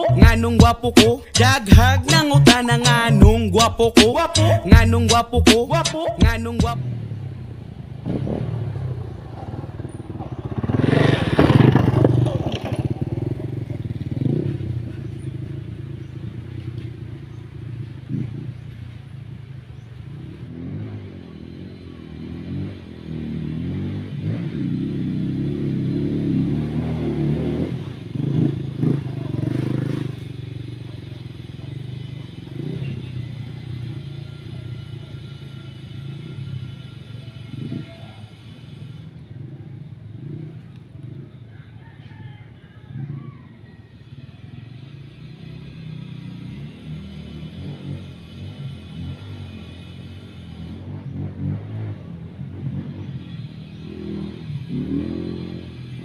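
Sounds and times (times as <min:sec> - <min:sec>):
dirt bike engine revving: 0:00.0 - 0:41.4, 0:44.0 - 0:56.0.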